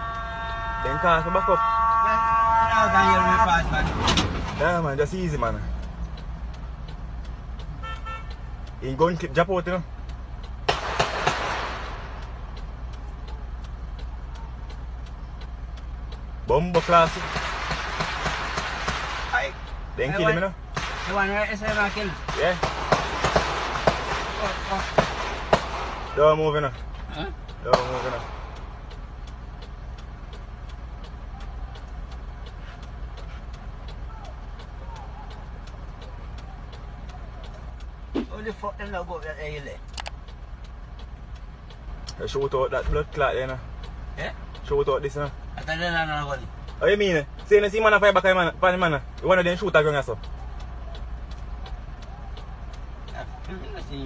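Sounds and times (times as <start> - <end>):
engine rumbling: 0.0 - 54.0
vehicle hum: 0.0 - 54.0
faint regular ticking: 4.6 - 54.0.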